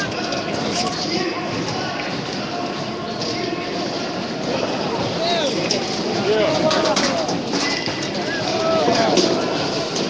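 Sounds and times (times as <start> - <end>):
crowd shouting and talking: 0.0 - 10.0.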